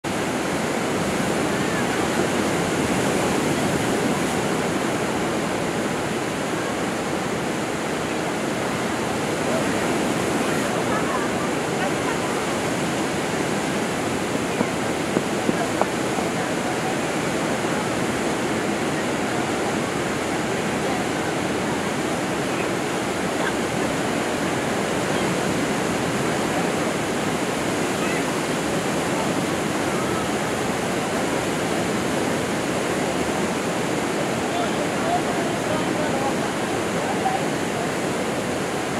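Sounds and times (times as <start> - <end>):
waves washing on sandy shore: 0.0 - 38.9.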